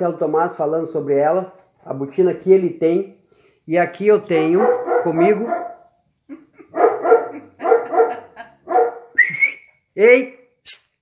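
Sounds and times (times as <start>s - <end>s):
dog barking: 4.4s - 5.9s, 6.7s - 9.2s.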